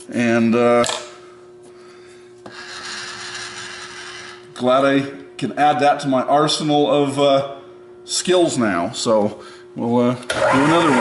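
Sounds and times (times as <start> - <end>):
loud rasping noise: 2.5 - 4.5
milling machine humming: 9.1 - 11.0.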